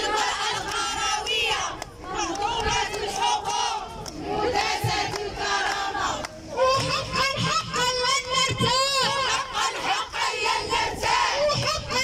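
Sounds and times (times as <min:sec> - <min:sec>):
crowd of women chanting: 0:00.0 - 0:12.0.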